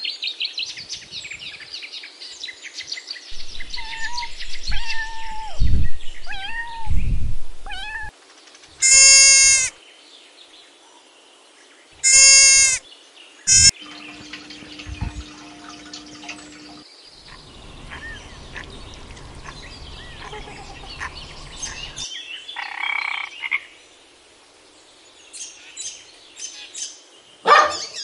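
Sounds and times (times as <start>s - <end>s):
cat meowing: 3.8s - 5.6s, 6.3s - 7.0s, 7.6s - 8.1s, 13.5s - 13.7s
chattering bird calls: 13.5s - 23.5s
low thumps: 14.1s - 20.4s.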